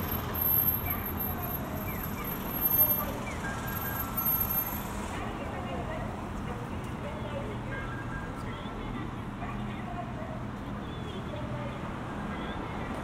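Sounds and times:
traffic rumble: 0.0s - 13.0s
passersby talking: 2.6s - 3.8s, 4.9s - 13.0s.

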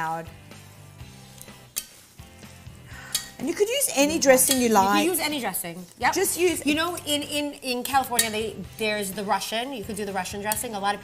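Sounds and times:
metal servers clinking on glass: 4.4s - 5.0s.

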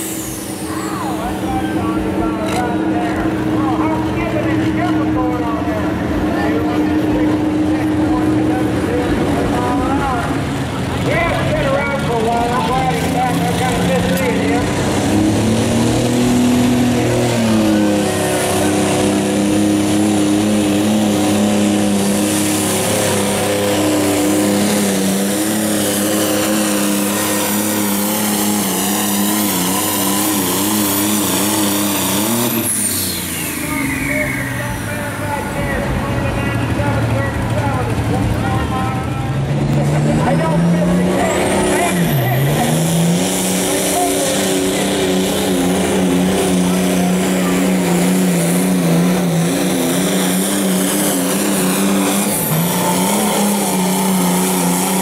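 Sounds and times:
diesel engines revving high: 0.0s - 55.0s.

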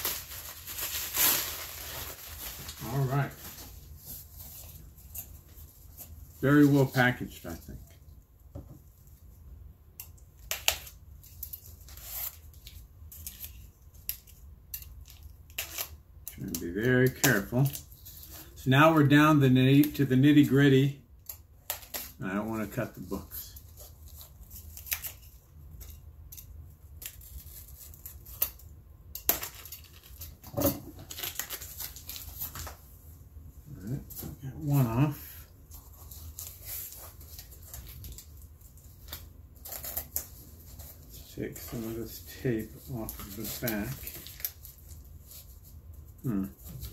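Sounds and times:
bubble wrap crinkling: 0.0s - 7.8s, 29.2s - 32.8s, 33.7s - 46.9s.

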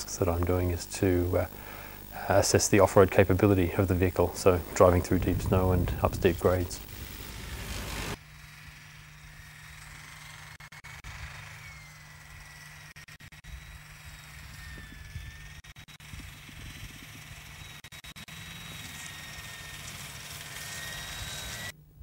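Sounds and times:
truck engine whine and rumble: 3.0s - 22.0s.

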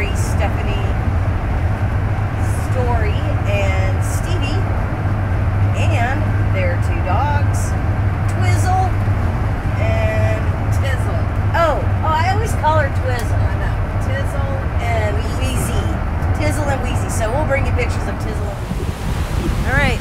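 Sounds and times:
woman speaking: 0.0s - 1.0s, 2.4s - 4.7s, 5.8s - 7.7s, 8.3s - 9.0s, 9.8s - 18.6s, 19.6s - 20.0s
road and engine drone in vehicle: 0.0s - 20.0s.

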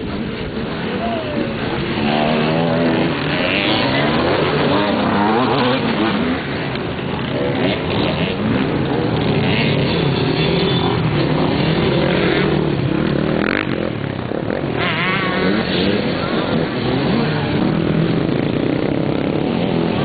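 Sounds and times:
motorcycle engines revving: 0.0s - 20.0s.

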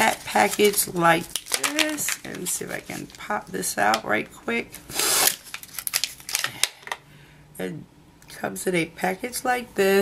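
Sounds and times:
plastic packaging crackling: 0.0s - 3.5s, 5.2s - 6.9s.

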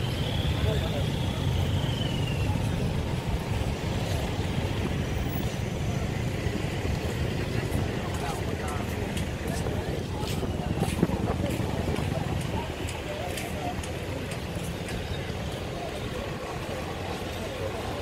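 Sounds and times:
passing cars and motorbikes: 0.0s - 18.0s.

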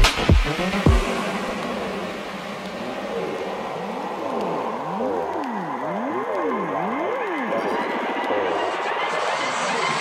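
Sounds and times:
reverb wash: 0.0s - 10.0s.

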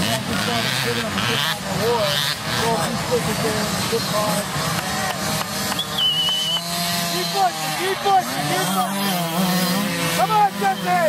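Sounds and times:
dirt bike engines running: 0.0s - 11.0s
high wavering whistle: 5.8s - 6.6s.

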